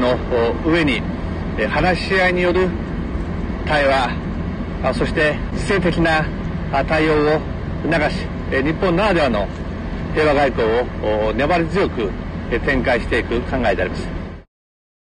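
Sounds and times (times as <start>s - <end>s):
man speaking: 0.0s - 2.8s, 3.6s - 14.2s
low engine-like hum: 0.0s - 14.5s.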